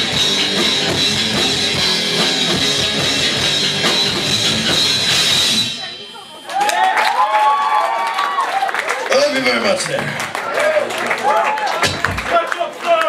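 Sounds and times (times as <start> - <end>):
live rock band playing: 0.0 - 6.6
audience cheering: 6.3 - 13.0.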